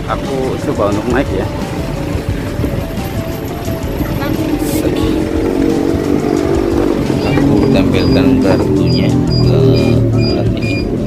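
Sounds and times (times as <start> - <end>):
music playing: 0.0 - 11.0
street traffic: 0.0 - 11.0.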